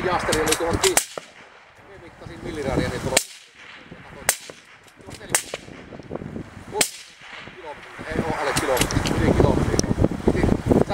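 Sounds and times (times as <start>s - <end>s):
rifle shots: 0.1s - 1.8s, 3.0s - 6.1s, 6.8s - 9.0s.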